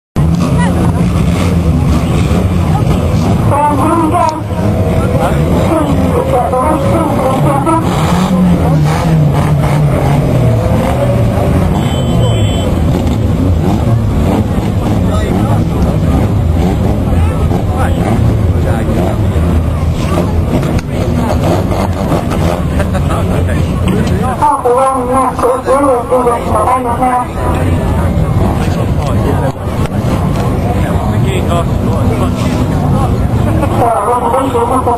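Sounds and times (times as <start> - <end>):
racing car engines revving: 0.2 - 34.9.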